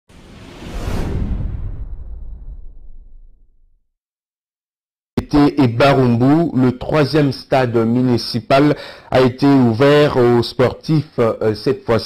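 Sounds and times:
deep rumble: 0.1 - 3.8
whoosh sound effect: 0.1 - 3.8.

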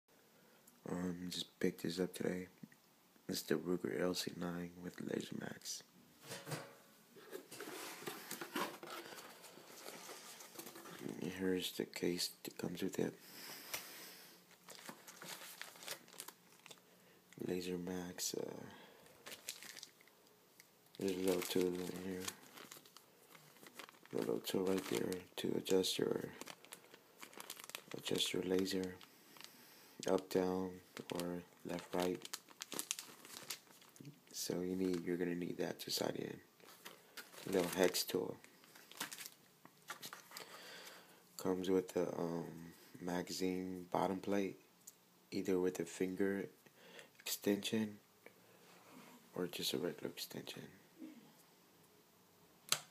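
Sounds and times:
cardboard flap scraping and rustling: 7.3 - 9.2
plastic bag crinkling: 7.5 - 11.2, 14.5 - 16.9, 19.1 - 20.1, 20.9 - 35.1, 36.6 - 40.6.

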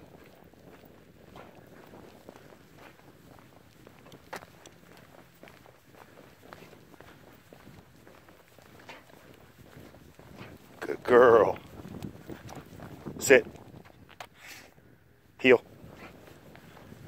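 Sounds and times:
dog paws clicking: 0.0 - 14.4
footsteps on asphalt: 0.0 - 17.0.

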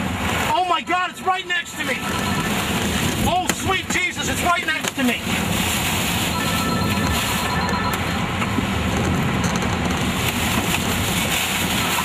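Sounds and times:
strong wind around vehicle: 0.0 - 12.0.

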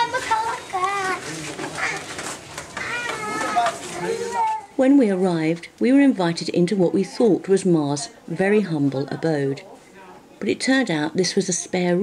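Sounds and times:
people talking: 0.0 - 2.1, 2.8 - 9.8, 10.4 - 12.0.

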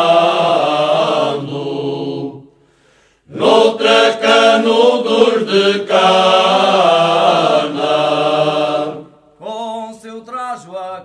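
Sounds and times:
choir singing unaccompanied: 0.0 - 2.5, 3.3 - 9.2.

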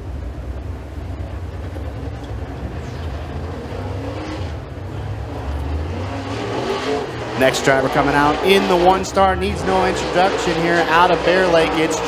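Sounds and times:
race car engine rumbling: 0.0 - 12.0.

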